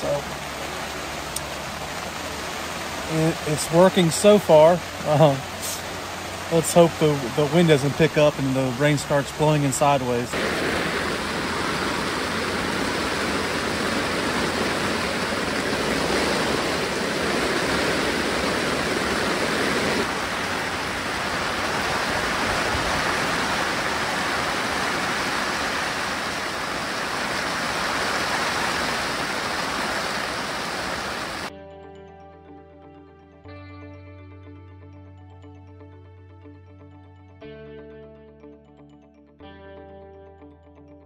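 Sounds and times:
heavy rain on fabric canopy: 0.0 - 31.5.

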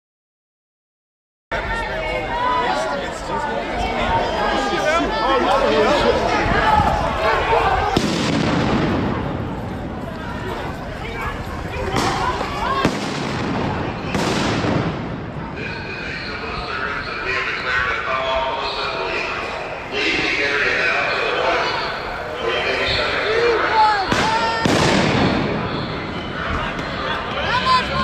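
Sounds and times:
people shouting: 1.6 - 8.1, 10.2 - 13.0, 23.1 - 28.0
firework bangs: 7.9 - 10.0, 11.9 - 15.8, 24.1 - 26.2
firework crackling: 11.8 - 15.4, 24.1 - 26.0.

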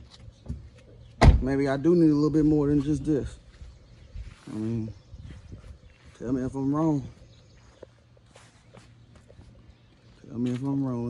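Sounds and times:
footsteps on concrete: 5.2 - 11.0.

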